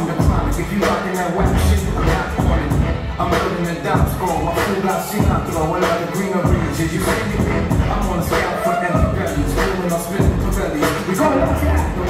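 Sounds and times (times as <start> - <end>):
hip hop with rapped vocals: 0.0 - 12.0.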